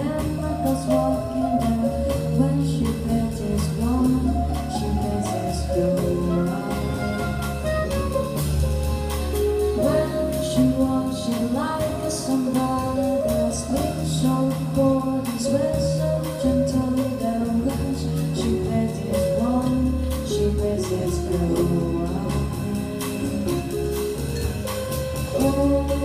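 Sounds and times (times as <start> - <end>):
woman singing: 0.0 - 7.4, 9.8 - 23.9, 25.3 - 26.0
drum kit with cymbals: 0.0 - 26.0
upright double bass: 0.0 - 26.0
woodwind: 4.0 - 14.3.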